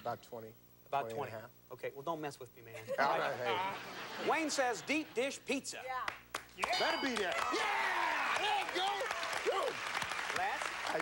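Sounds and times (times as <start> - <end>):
audience applauding: 6.0 - 11.0
men cheering and whooping: 6.6 - 9.8.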